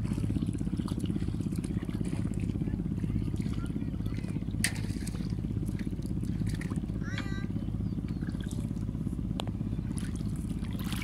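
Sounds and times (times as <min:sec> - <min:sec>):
boat engine throbbing: 0:00.0 - 0:11.0.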